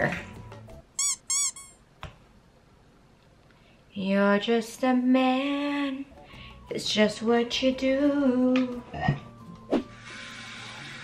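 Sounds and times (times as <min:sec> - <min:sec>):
high squeaks: 0:01.0 - 0:01.8.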